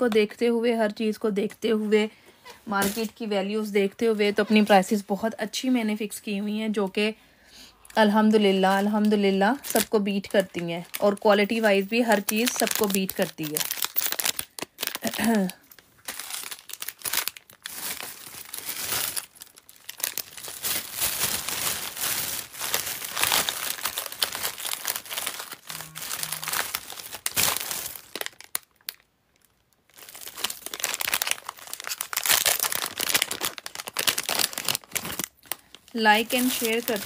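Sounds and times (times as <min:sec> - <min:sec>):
plastic packaging crinkling: 0:02.7 - 0:04.8, 0:07.9 - 0:37.0.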